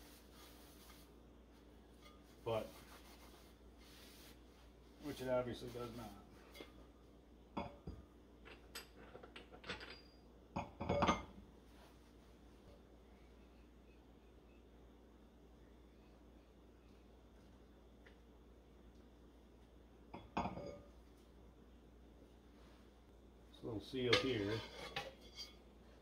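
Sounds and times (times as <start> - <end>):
metal parts clinking and knocking: 8.4 - 10.1.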